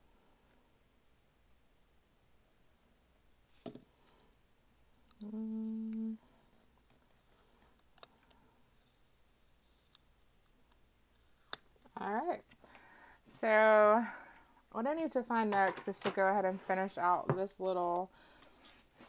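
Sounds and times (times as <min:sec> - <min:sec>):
person humming a note: 0:05.2 - 0:06.2.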